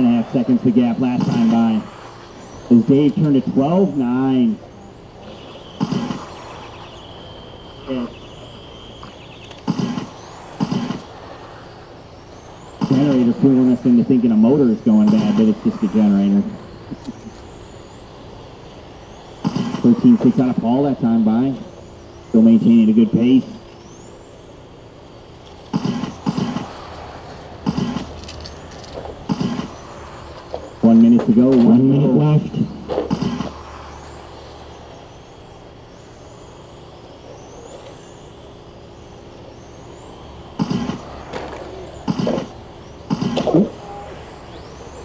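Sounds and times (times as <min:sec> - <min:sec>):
portable generator running: 0:00.0 - 0:45.0
steady high whine: 0:00.0 - 0:45.0
toy race cars passing: 0:00.0 - 0:45.0.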